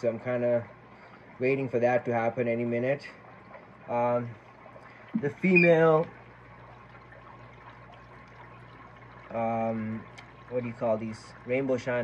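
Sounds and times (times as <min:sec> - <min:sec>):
aquarium water trickling and bubbling: 0:00.0 - 0:12.0
low steady hum: 0:00.0 - 0:12.0.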